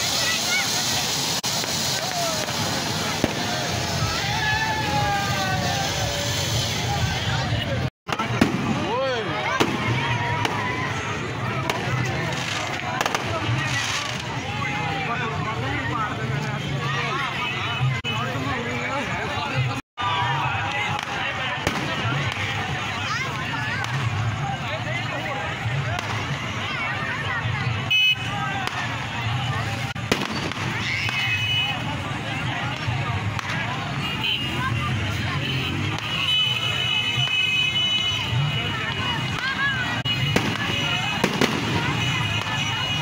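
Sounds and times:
fountain fireworks hissing: 0.0 - 43.0
people chattering: 0.0 - 43.0
sharp crack: 8.1 - 10.6, 20.9 - 22.6, 29.9 - 31.4, 40.3 - 42.6
firework bang: 8.1 - 10.8, 20.9 - 22.5, 30.0 - 31.4, 40.3 - 42.5.

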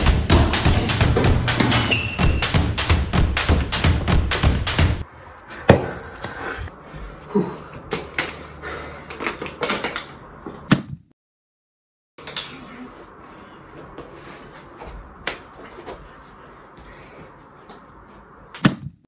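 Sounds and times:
music with steady beat: 0.0 - 5.0.

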